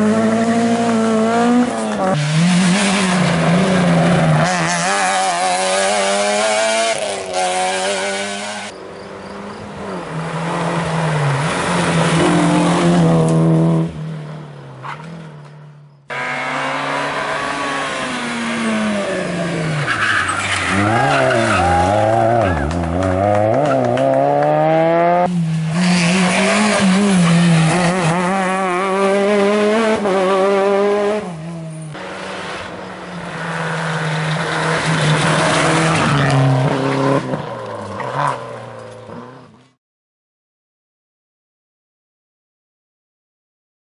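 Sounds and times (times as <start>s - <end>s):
rally car engines revving: 0.0s - 39.7s.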